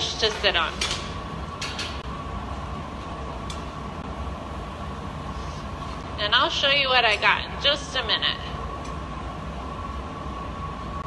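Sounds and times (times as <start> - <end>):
gas furnace and blowers roaring: 0.0 - 11.0
high hum: 0.0 - 11.0.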